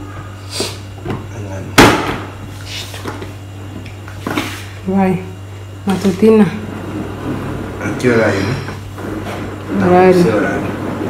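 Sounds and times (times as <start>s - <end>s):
loud sharp knock: 1.8s - 2.3s.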